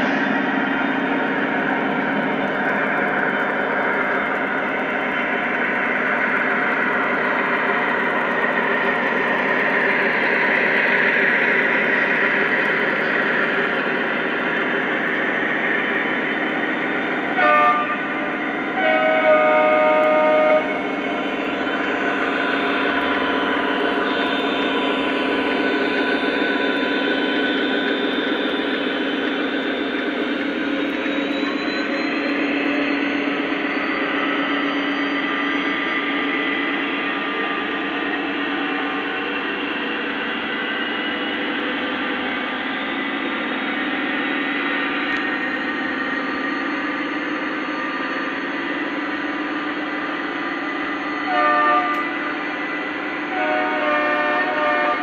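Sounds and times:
model locomotive engine sound: 0:00.0 - 0:55.0
model train horn: 0:17.4 - 0:18.1, 0:18.8 - 0:20.7, 0:51.3 - 0:52.1, 0:53.3 - 0:55.0.

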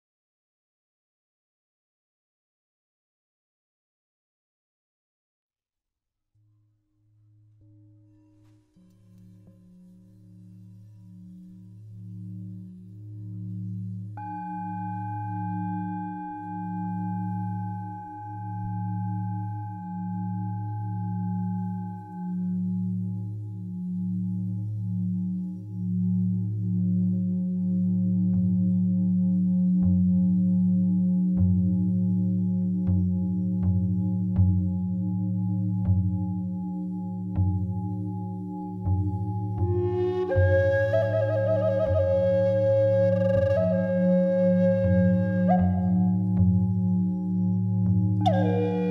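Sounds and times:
singing bowls droning: 0:07.6 - 0:48.9
singing bowl struck and ringing: 0:14.2 - 0:23.1
wooden flute melody: 0:38.6 - 0:48.9.

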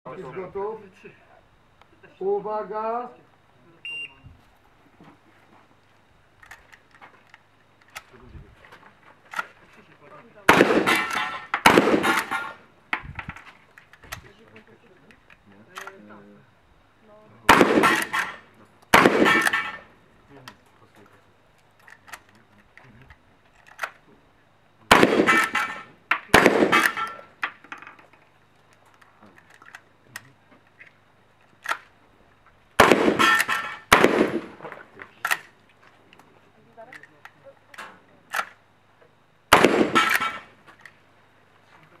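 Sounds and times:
shotgun shots: 0:10.4 - 0:12.6, 0:17.4 - 0:19.9, 0:24.9 - 0:27.3, 0:32.8 - 0:35.4, 0:39.5 - 0:40.6
small clicks and knocks: 0:20.4 - 0:24.1, 0:26.1 - 0:31.9.

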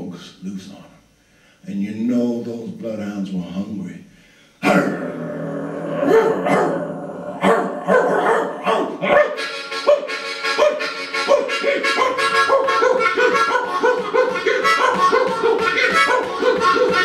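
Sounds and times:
blues harmonica: 0:08.9 - 0:17.0.

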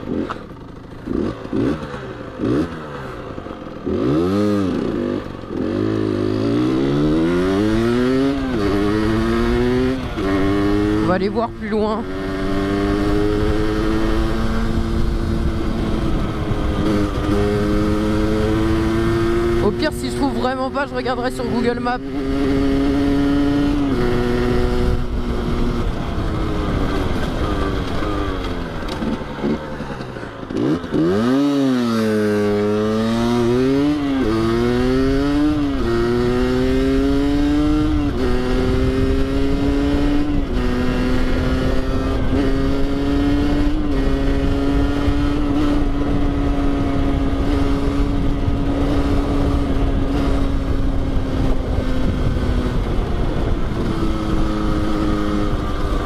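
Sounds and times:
motorcycle engine revving and cruising: 0:00.0 - 0:56.0.

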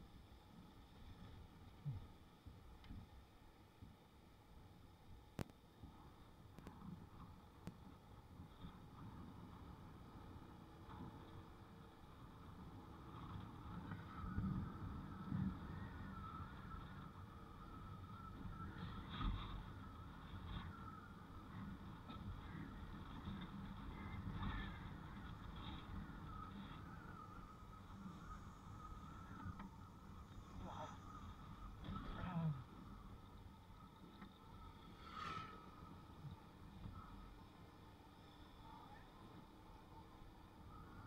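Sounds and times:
faint wavering whine: 0:00.0 - 0:41.0.

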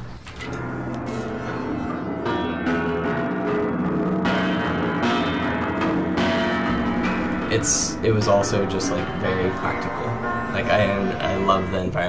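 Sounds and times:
piano strings struck and ringing: 0:00.0 - 0:12.0.

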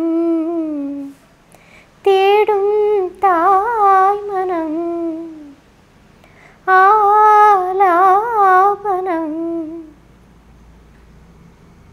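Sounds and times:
woman humming: 0:00.0 - 0:01.2, 0:02.4 - 0:05.6, 0:07.8 - 0:10.0
faint low hiss: 0:00.0 - 0:11.9.

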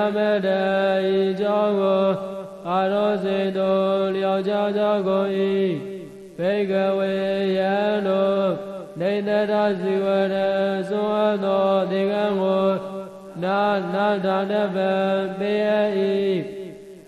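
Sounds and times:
person chanting melodic recitation: 0:00.0 - 0:16.8.

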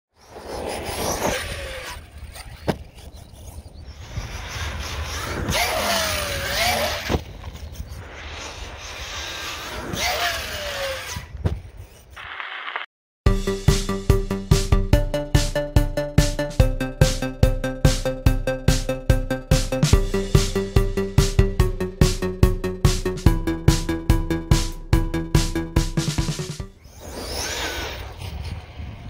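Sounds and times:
rc car electric motor whining: 0:00.2 - 0:12.9, 0:26.7 - 0:29.0
electronic music with beat: 0:13.3 - 0:26.8.

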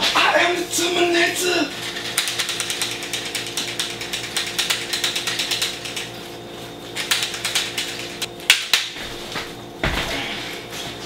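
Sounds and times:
rapid ratchet-like clicking: 0:01.8 - 0:06.1.

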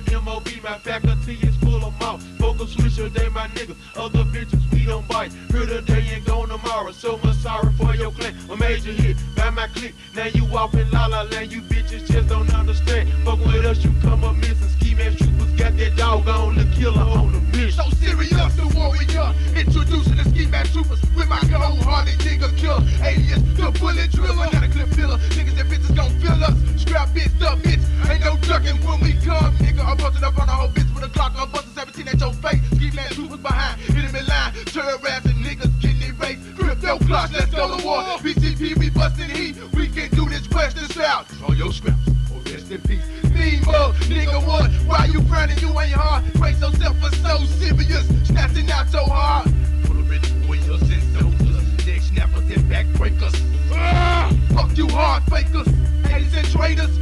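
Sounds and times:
rap track with deep bass: 0:00.0 - 0:57.0.

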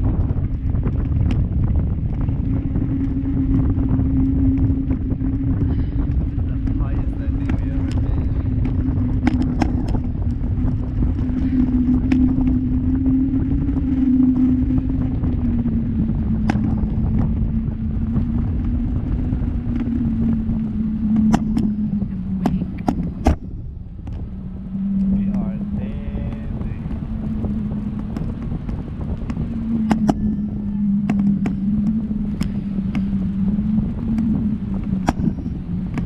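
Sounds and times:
motorboat engine running: 0:00.0 - 0:36.0.

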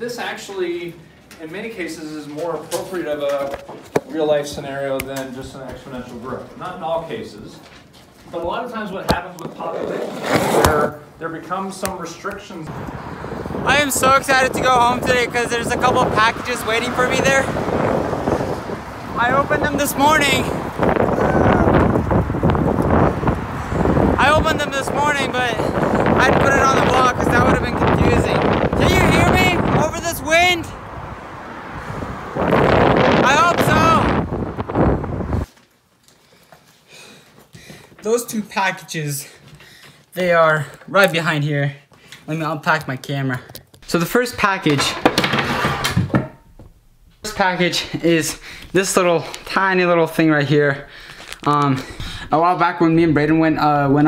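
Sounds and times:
wind buffeting microphone: 0:12.7 - 0:35.5.

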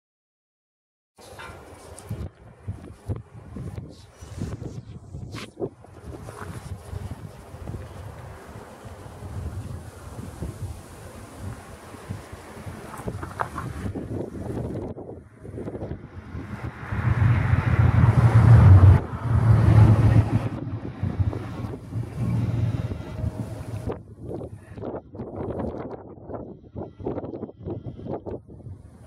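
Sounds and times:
wind buffeting microphone: 0:01.3 - 0:29.0.

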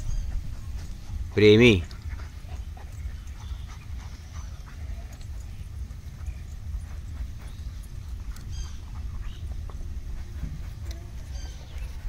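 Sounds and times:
dog sniffing on grass: 0:00.0 - 0:12.0
faint clicks and rustles: 0:00.0 - 0:12.0
steady low rumble: 0:00.0 - 0:12.0.

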